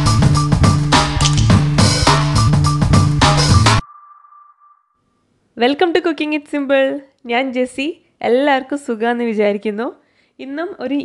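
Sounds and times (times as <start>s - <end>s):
intro jingle with steady beat: 0.0s - 4.9s
high ringing ping: 3.8s - 5.3s.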